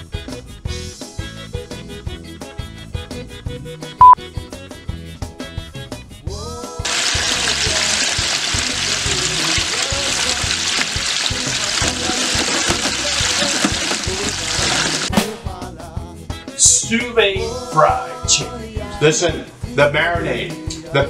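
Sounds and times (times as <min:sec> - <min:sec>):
background music with a beat: 0:00.0 - 0:21.0
chicken deep-frying in oil: 0:06.8 - 0:15.1.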